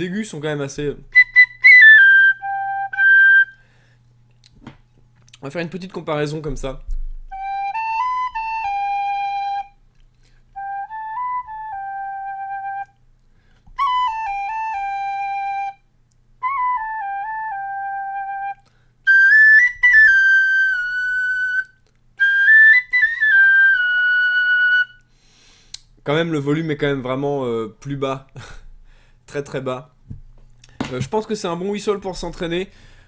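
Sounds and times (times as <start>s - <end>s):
tin whistle tune: 1.1s - 3.6s, 7.3s - 9.8s, 10.6s - 13.0s, 13.8s - 25.1s.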